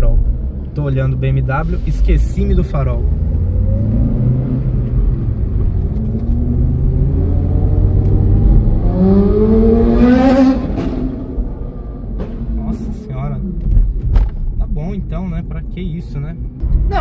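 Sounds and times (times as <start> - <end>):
car engine accelerating: 0.0 - 17.0
road rumble: 0.0 - 17.0.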